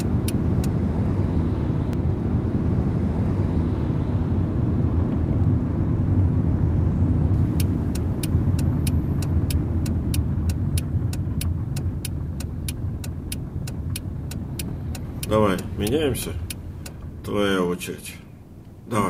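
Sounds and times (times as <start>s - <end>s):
turn indicator ticking: 0.0s - 0.8s, 7.4s - 17.4s
car engine and tyre rumble: 0.0s - 19.0s.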